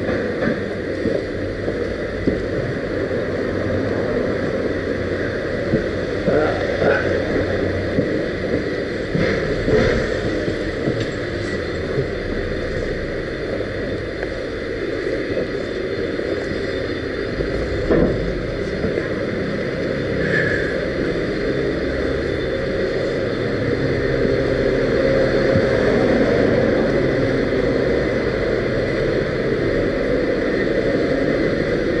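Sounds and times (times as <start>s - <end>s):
small vehicle rolling on sidewalk: 0.0s - 32.0s.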